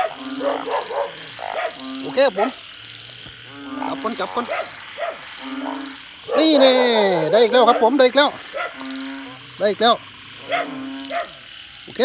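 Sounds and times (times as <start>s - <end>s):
high-pitched frog or insect chorus: 0.0s - 12.0s
low frog calls: 0.0s - 12.0s.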